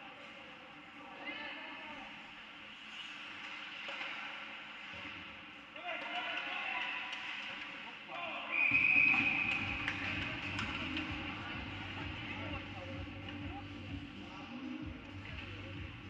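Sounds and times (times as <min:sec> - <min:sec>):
referee's whistle blast: 0:08.5 - 0:09.6.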